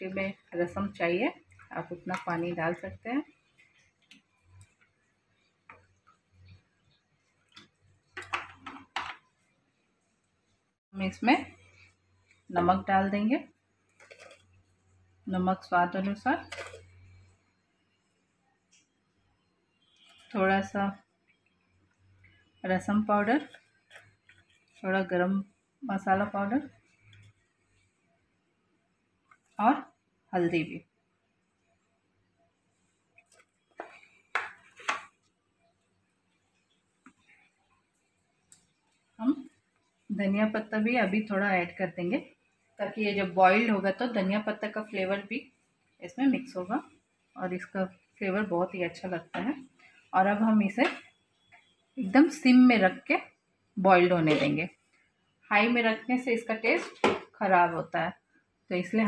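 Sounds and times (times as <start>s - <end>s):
kitchen items clicking and knocking: 7.6s - 9.4s, 56.7s - 57.4s.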